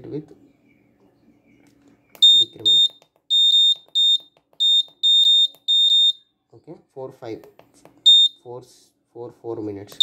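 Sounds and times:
high-pitched buzzer beeps: 2.2 - 6.2.

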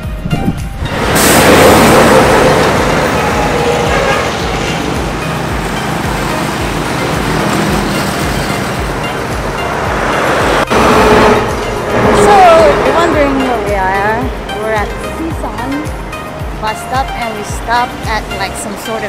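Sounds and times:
dump trucks passing: 0.7 - 19.0
motorcycle tricycles passing: 0.9 - 15.8.

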